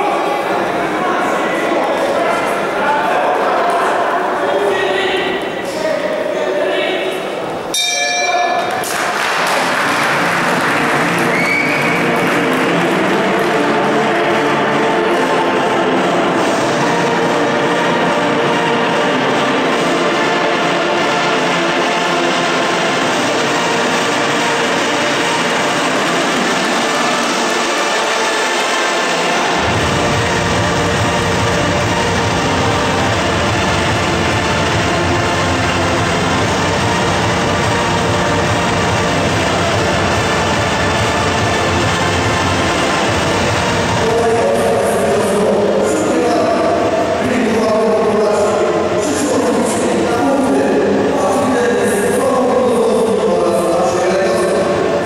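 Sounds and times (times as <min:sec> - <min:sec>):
crowd noise: 0:00.0 - 0:55.0
music over sound system: 0:09.6 - 0:55.0.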